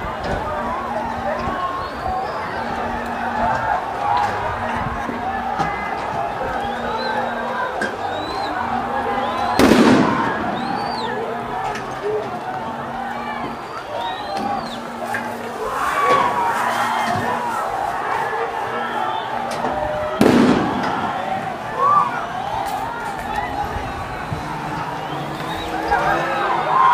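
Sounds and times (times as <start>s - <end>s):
crowd shouting: 0.0s - 26.9s.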